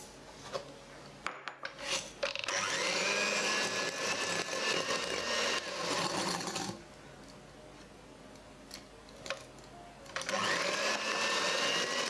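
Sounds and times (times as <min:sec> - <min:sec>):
electric hand mixer whining: 0:02.5 - 0:06.8, 0:10.2 - 0:12.0.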